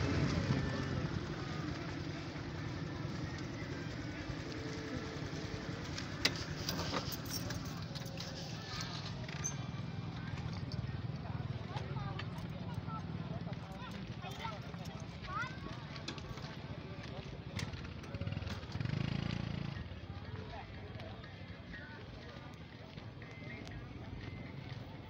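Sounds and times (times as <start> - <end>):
motorbike engine hum: 0.0 - 25.0
people talking faintly: 0.0 - 25.0.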